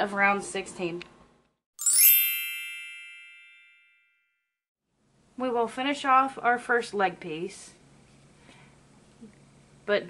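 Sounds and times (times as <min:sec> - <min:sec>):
bright chime ding: 0:01.8 - 0:04.2.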